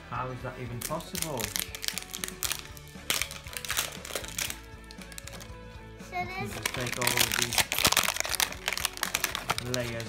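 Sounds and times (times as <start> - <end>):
background music: 0.0 - 10.0
wrapper crackling: 0.7 - 5.6, 6.5 - 10.0.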